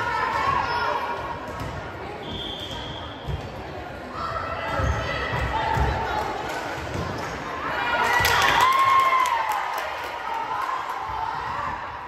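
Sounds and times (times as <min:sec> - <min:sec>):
voices echoing in gym: 0:00.0 - 0:12.0.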